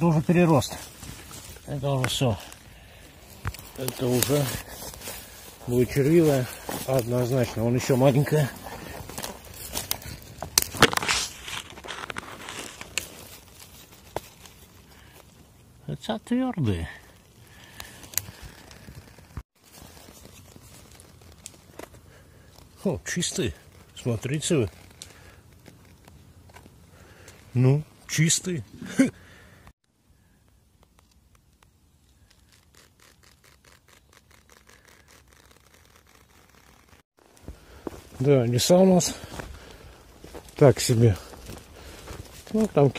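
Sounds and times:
rustling of dry pine needles: 0:00.0 - 0:29.0, 0:30.0 - 0:42.9.

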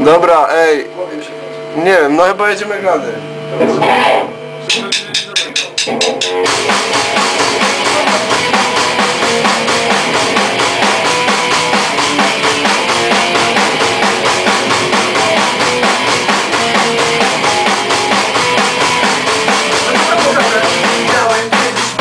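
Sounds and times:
rock band playing: 0:03.1 - 0:22.0.

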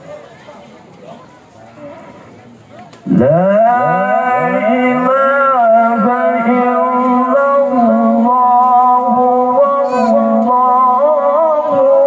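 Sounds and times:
faint murmur: 0:00.0 - 0:03.1
man reciting through loudspeakers: 0:03.0 - 0:12.0.

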